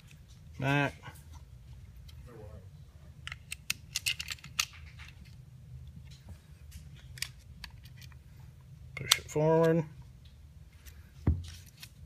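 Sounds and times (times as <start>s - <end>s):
pistol parts clicking: 3.2s - 5.2s, 6.8s - 8.2s.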